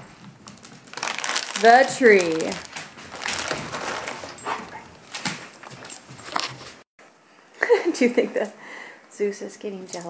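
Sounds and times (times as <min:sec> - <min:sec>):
rustling and handling noises: 0:00.0 - 0:06.9.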